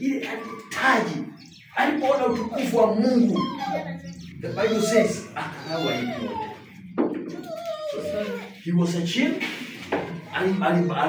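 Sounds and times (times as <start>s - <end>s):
man preaching: 0.0s - 6.6s, 8.0s - 9.6s, 10.3s - 11.0s.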